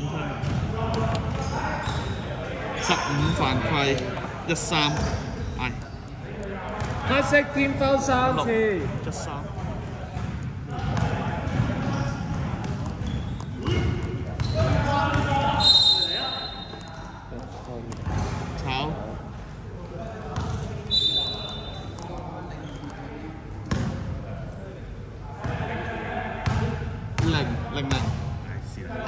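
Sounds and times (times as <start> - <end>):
sneaker squeaks: 0.0 - 2.4, 4.8 - 6.2, 10.9 - 18.6, 20.4 - 23.1
players' voices echoing: 0.0 - 29.0
basketball bouncing on court: 0.4 - 2.2, 4.9 - 5.2, 6.8 - 7.1, 9.6 - 15.4, 17.9 - 18.4, 20.4 - 20.7, 23.6 - 24.1, 26.4 - 28.3.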